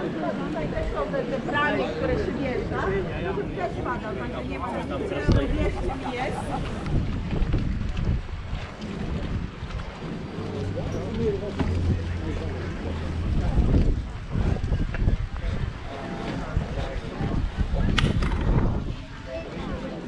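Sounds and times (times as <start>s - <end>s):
voices of passers-by: 0.0s - 20.0s
wind buffeting microphone: 5.0s - 20.0s.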